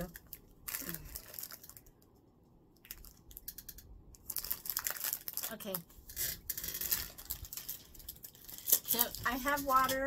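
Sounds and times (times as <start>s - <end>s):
plastic package crinkling: 0.0s - 10.0s.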